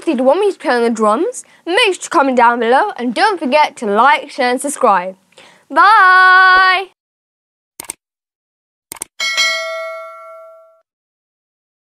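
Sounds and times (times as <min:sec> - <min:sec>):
notification bell ding: 0:09.2 - 0:10.8.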